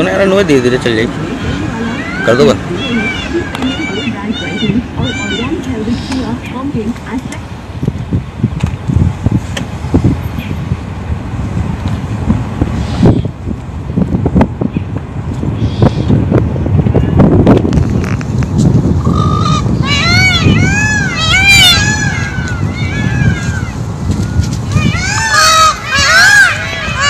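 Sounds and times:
vehicle rumble: 0.0s - 27.0s
wind noise: 0.0s - 27.0s
peafowl calling: 1.2s - 6.4s, 15.6s - 16.2s, 19.0s - 27.0s.

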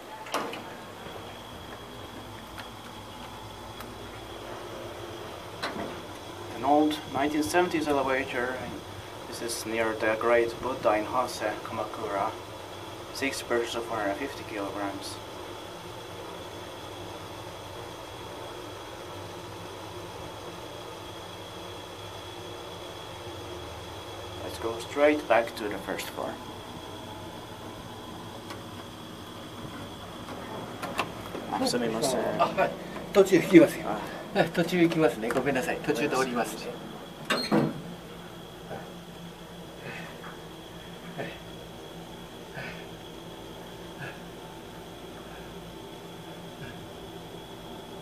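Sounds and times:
elevator rumble and hum: 0.0s - 48.0s
faint high whine: 0.0s - 48.0s.

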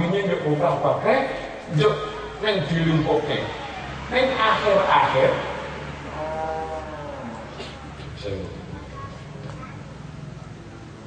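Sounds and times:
faint background noise: 0.0s - 11.0s
drawn-out vocal call: 2.0s - 8.0s.

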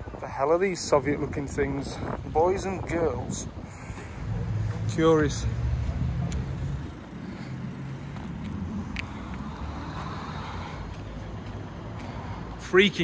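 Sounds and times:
passing cars hum: 3.2s - 13.0s
vehicle passing: 3.6s - 13.0s.

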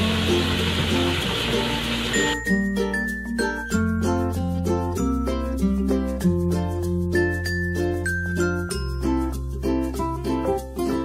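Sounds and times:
faucet running into sink: 0.0s - 2.4s
background music: 0.0s - 11.0s.

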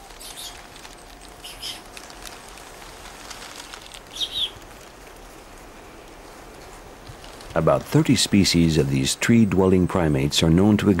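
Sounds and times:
faint steady background tone: 0.0s - 11.0s
high bird chirps: 1.4s - 1.9s, 4.1s - 4.6s.

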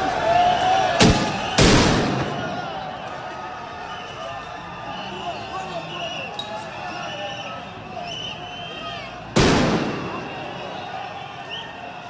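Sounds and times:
voices in street: 0.0s - 12.0s.

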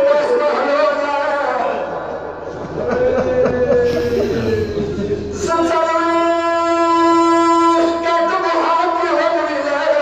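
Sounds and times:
man singing long note: 3.7s - 8.2s.

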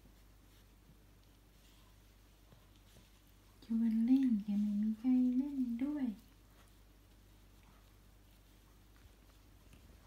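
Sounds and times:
woman speaking sing-song: 3.6s - 6.3s.

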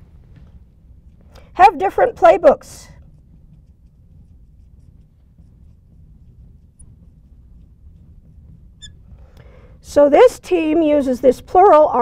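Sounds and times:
low room hum: 0.0s - 12.0s
marker writing on glass: 2.9s - 9.1s
marker tip squeak: 8.8s - 9.0s.

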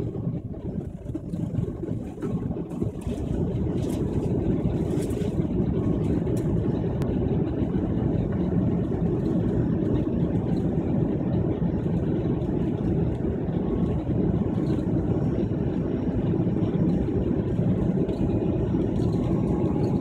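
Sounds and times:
jet engine and airflow rumble: 0.0s - 20.0s.

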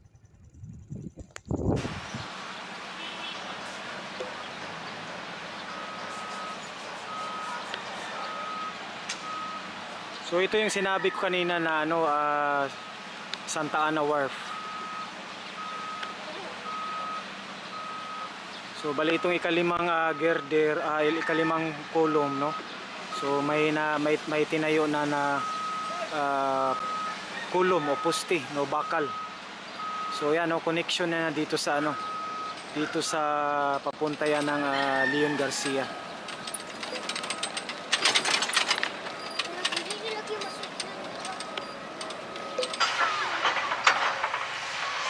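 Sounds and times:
construction site noise: 1.2s - 45.0s
reversing alarm beeps: 5.8s - 9.7s, 14.4s - 18.3s, 19.1s - 21.5s, 22.3s - 23.5s, 25.3s - 30.3s, 31.8s - 33.0s, 41.4s - 43.3s
rapid mechanical rattling: 35.7s - 45.0s
sharp clatter: 36.2s - 45.0s.

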